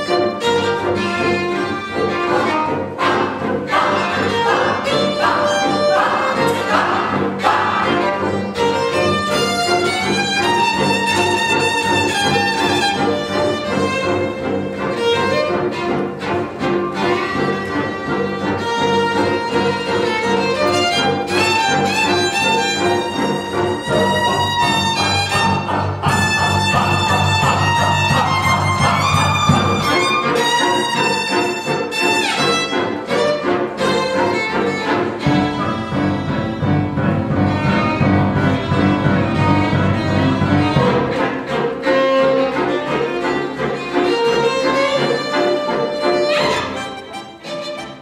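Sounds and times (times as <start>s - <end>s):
bowed strings: 0.0s - 48.0s
deep bass notes: 23.5s - 30.2s, 35.2s - 41.2s.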